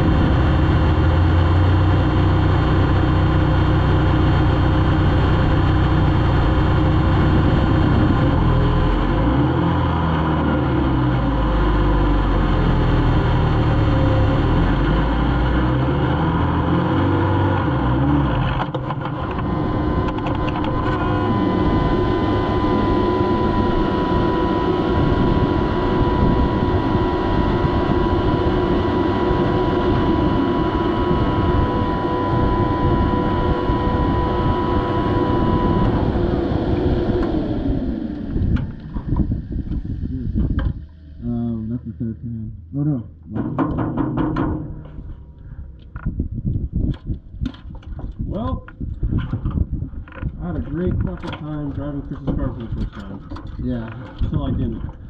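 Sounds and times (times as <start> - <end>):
race car engine: 0.0 - 46.2
steady mechanical whine: 0.0 - 55.0
dense rattling: 43.2 - 48.3.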